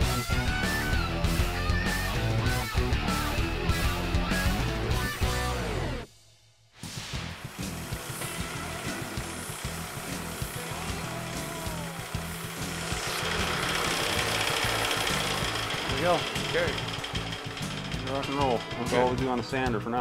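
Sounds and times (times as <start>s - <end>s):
background music: 0.0s - 6.1s, 6.8s - 20.0s
bench sander grinding bamboo: 7.4s - 20.0s.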